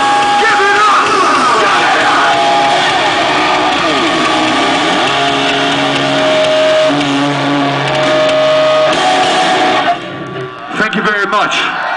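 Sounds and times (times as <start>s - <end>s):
live rock band playing: 0.0s - 11.1s
distorted electric guitars: 0.0s - 11.2s.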